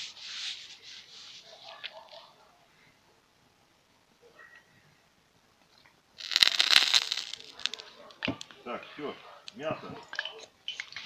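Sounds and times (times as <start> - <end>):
oil sizzling and crackling in pan: 6.2 - 7.8.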